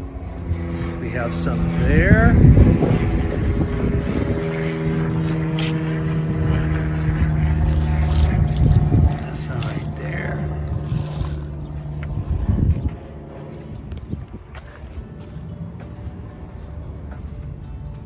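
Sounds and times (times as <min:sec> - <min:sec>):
motor engine running steadily: 0:00.0 - 0:18.0.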